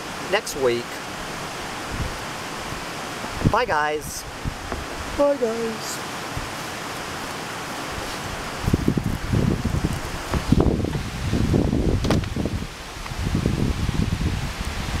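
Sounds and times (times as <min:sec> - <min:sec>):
creek water rushing: 0:00.0 - 0:15.0
rumbling on microphone: 0:08.0 - 0:14.6.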